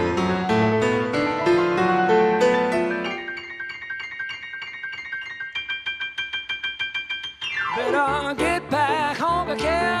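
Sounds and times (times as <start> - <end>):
descending piano run: 0.0 - 3.6
piano chord repeated rapidly: 0.0 - 10.0.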